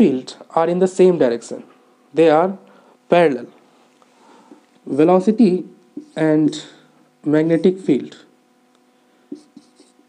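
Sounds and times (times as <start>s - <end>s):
marker pen on whiteboard: 6.0s - 6.7s, 7.3s - 8.1s, 9.3s - 10.0s.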